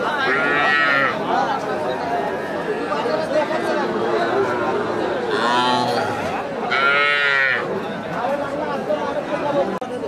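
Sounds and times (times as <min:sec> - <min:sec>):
crowd chatter: 0:00.0 - 0:10.0
calf mooing: 0:05.3 - 0:07.7.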